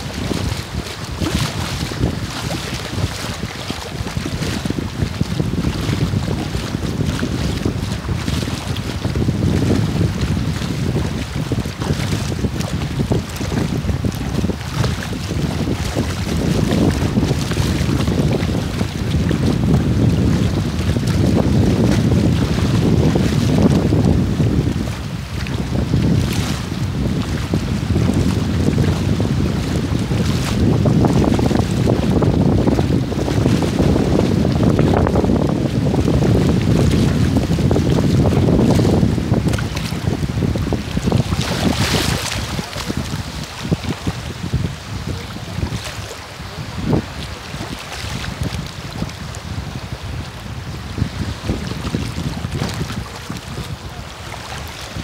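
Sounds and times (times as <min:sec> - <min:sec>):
water rushing and splashing: 0:00.0 - 0:55.0
wind rumbling on microphone: 0:00.0 - 0:55.0.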